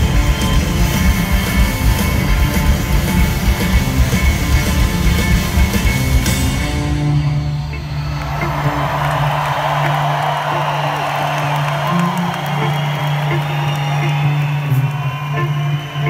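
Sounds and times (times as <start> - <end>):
crowd cheering and whooping: 0.0 - 16.0
rock band holding low chord: 0.0 - 16.0.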